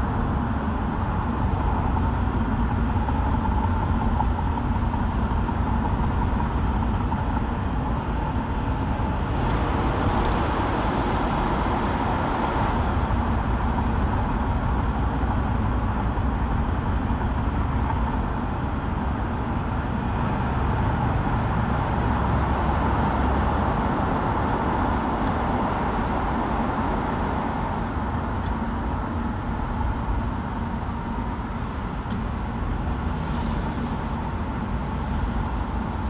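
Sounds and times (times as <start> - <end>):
car driving in traffic: 0.0 - 36.0.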